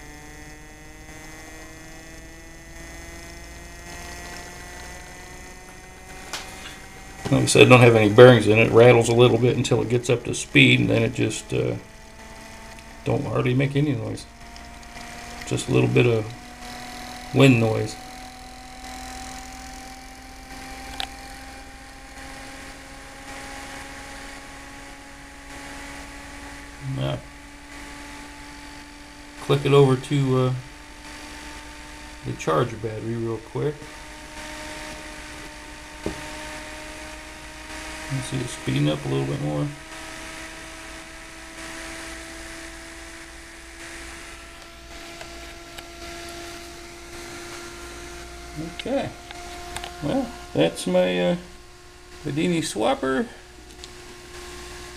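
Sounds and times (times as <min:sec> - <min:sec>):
motor humming: 0:00.0 - 0:54.9.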